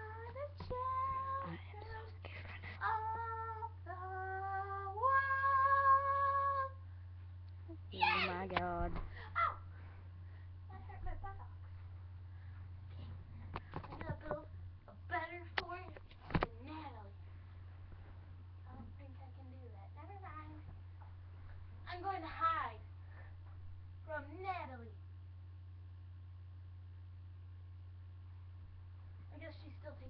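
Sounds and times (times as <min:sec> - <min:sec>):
girl singing: 0:00.0 - 0:06.8.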